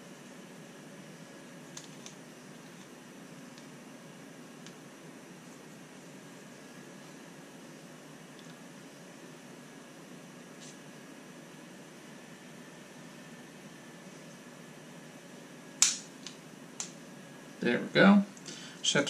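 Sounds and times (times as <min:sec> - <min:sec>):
room hiss: 0:00.0 - 0:19.0.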